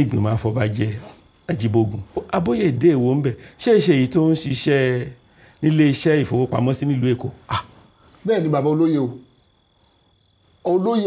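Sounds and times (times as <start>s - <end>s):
man talking: 0.0s - 9.2s, 10.6s - 11.0s
crickets chirping: 0.0s - 11.0s.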